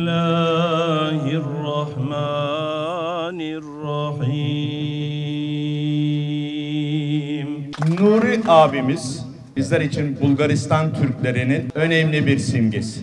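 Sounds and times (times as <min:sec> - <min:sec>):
man chanting a prayer: 0:00.0 - 0:13.0.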